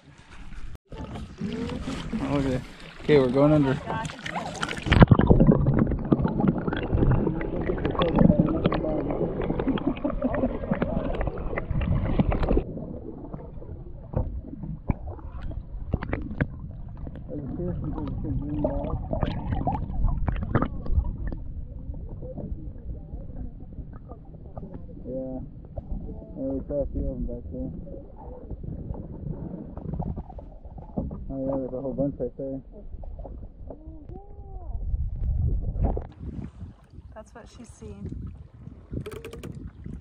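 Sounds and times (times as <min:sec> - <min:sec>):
water sloshing and splashing: 0:00.0 - 0:26.3, 0:28.1 - 0:31.8, 0:32.8 - 0:40.0.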